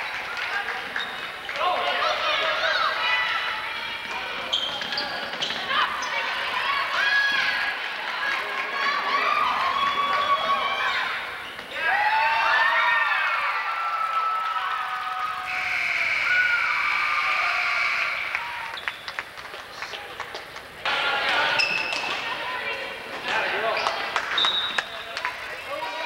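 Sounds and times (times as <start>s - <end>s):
spectators shouting and cheering: 0.0s - 19.8s
sneaker squeaks: 0.9s - 1.4s, 4.0s - 6.4s, 21.5s - 22.2s, 23.6s - 25.7s.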